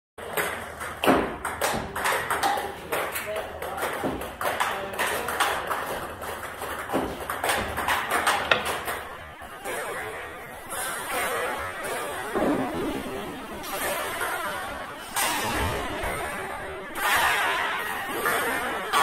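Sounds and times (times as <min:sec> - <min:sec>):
table tennis ball clicking: 0:07.5 - 0:09.1.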